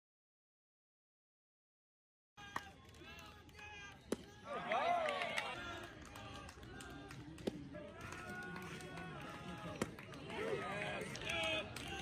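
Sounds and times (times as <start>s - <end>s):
people talking and calling out: 2.4s - 12.0s.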